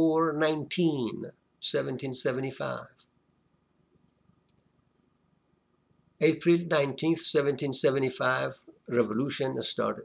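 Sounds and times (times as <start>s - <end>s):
faint click: 4.4s - 4.7s.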